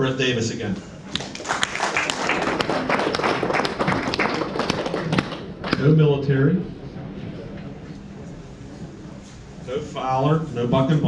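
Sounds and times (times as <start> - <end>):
people clapping: 1.1 - 6.0.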